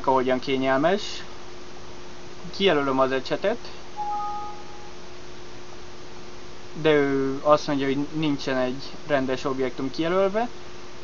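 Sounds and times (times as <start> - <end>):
two-note electronic alert chime: 4.0 - 5.0.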